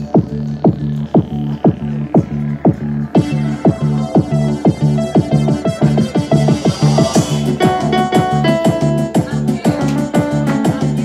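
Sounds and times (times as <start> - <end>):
hi-hats: 0.0 - 11.0
kick drum: 0.0 - 11.0
steady bass notes: 0.0 - 11.0.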